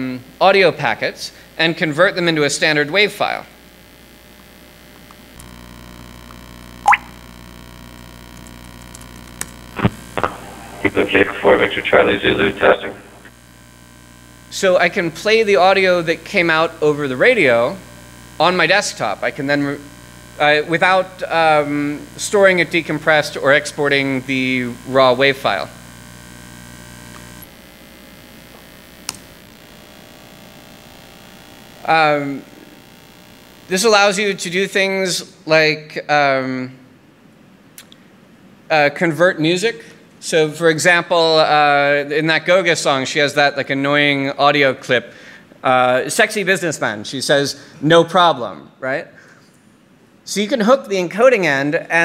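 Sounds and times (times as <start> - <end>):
electrical mains hum: 0.0 - 52.0.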